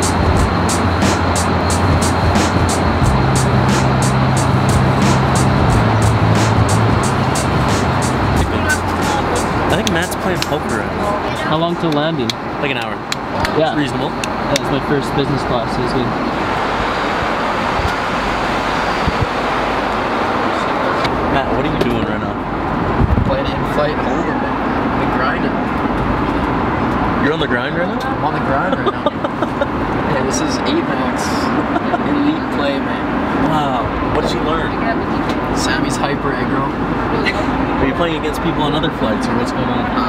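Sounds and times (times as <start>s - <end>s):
airliner engine drone: 0.0s - 11.9s, 13.0s - 26.9s
indistinct talk: 7.4s - 16.4s, 19.9s - 40.0s.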